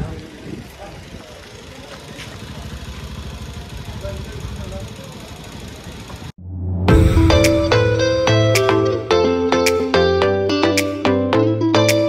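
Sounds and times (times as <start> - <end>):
voices: 0.0 - 6.3
vehicle engine rumbling: 0.0 - 9.2.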